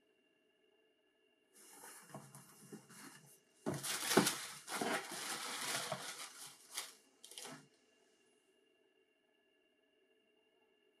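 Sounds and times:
cardboard box rustling and scraping: 1.6s - 7.6s.

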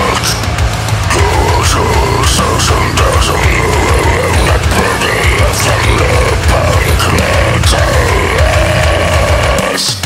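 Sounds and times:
deathcore song: 0.0s - 10.0s
distorted guitars: 0.0s - 10.0s
fast kick drums: 0.4s - 10.0s
harsh screamed vocal: 1.1s - 10.0s.

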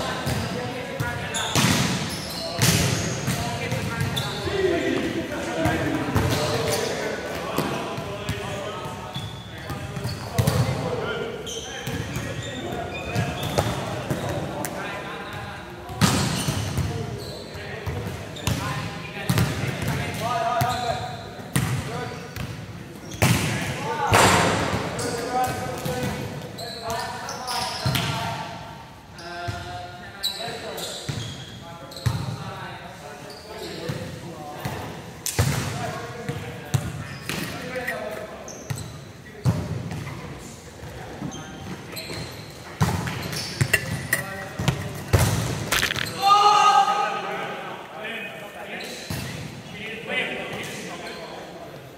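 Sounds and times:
volleyballs being hit: 42.8s - 46.3s.

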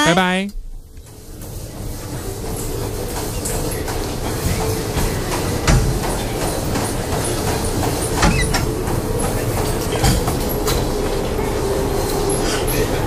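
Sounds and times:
continuous rumbling: 0.5s - 13.0s.

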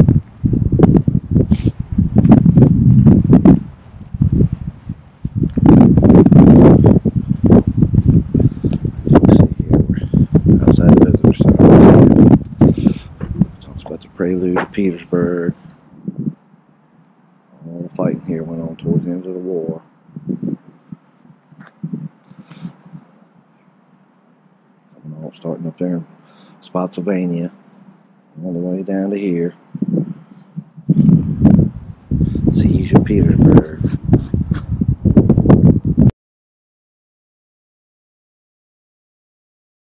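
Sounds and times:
wind buffeting microphone: 0.0s - 16.4s, 17.8s - 23.0s, 29.0s - 36.1s
soft footsteps: 13.2s - 14.9s.

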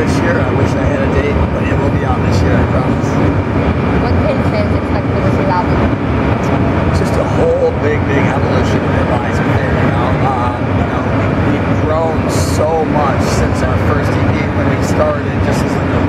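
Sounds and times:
man talking: 0.0s - 3.3s, 6.4s - 16.0s
low rumble: 0.0s - 16.0s.

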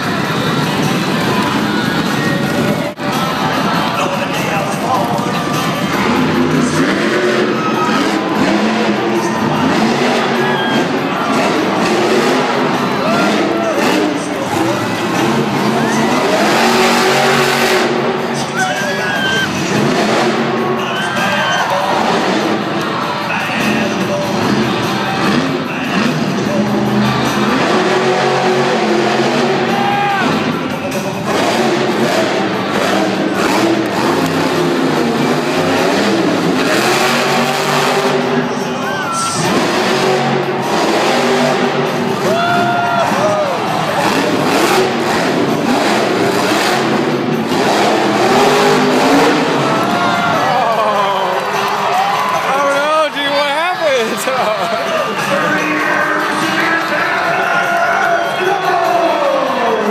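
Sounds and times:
crowd noise: 0.0s - 59.9s
loud music over loudspeakers: 0.0s - 59.9s
monster truck engine revving: 0.0s - 59.9s.

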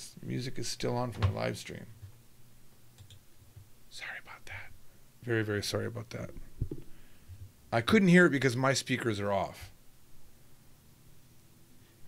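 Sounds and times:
faint small clicks: 3.0s - 3.7s.

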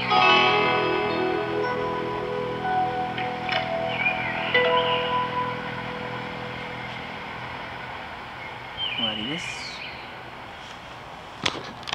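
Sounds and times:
guitar backing track: 0.0s - 8.8s
background hum: 0.0s - 11.9s.

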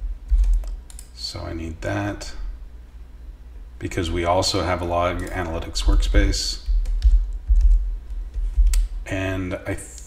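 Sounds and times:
keyboard typing: 0.3s - 1.1s, 6.6s - 8.9s.

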